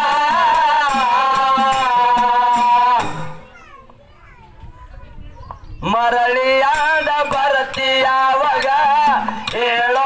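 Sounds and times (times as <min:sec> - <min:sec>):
children chattering: 0:03.2 - 0:06.0.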